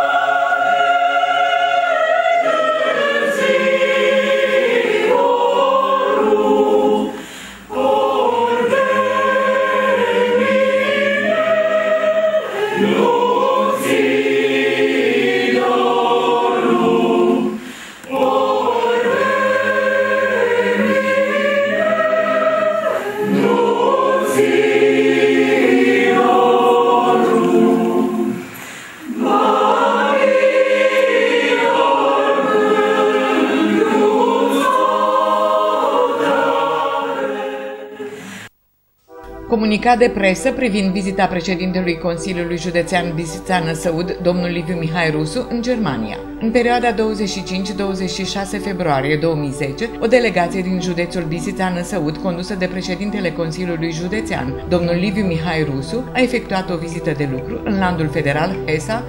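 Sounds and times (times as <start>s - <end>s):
mixed choir singing: 0.0s - 38.5s, 49.7s - 59.0s.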